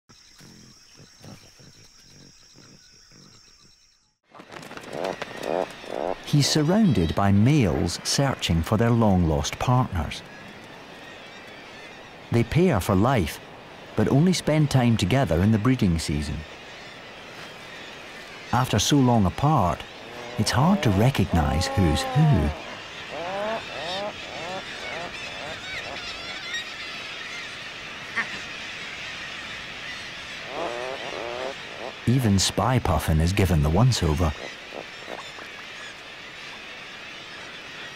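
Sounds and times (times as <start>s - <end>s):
insects trilling: 0.1s - 37.9s
puffins calling: 0.1s - 37.9s
faint high bird calls: 9.0s - 37.9s.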